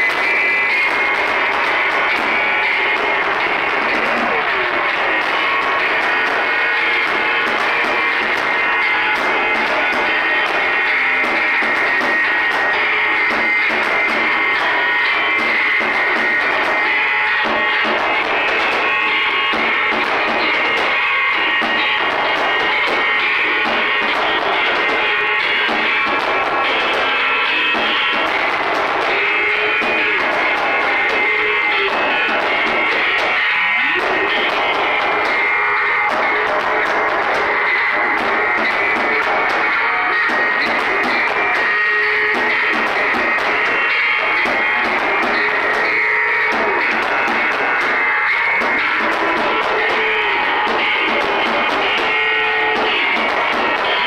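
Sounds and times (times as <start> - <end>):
distorted noise drone music: 0.0 - 54.0
drums beating steadily: 0.0 - 54.0
wall of amplified noise: 0.0 - 54.0.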